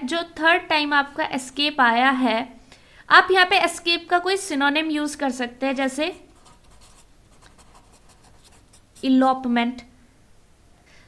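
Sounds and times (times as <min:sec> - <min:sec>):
marker pen scratching on paper: 0:06.1 - 0:09.3.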